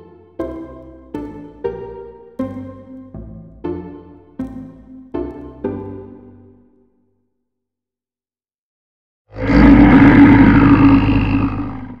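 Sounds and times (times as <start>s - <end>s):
deep beast-like roar: 9.3s - 12.0s.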